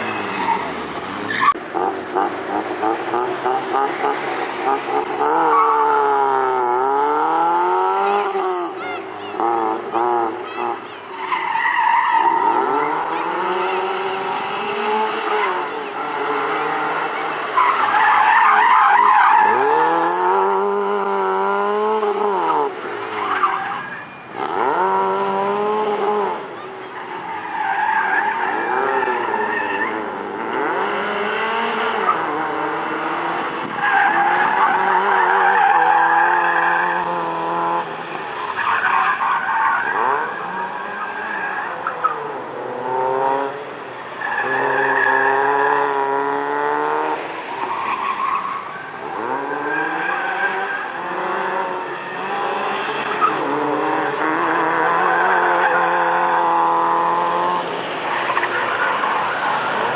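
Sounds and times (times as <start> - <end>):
tyres squealing and skidding: 0.0 - 59.9
car engine revving: 24.3 - 26.6, 28.2 - 47.5, 49.0 - 59.9.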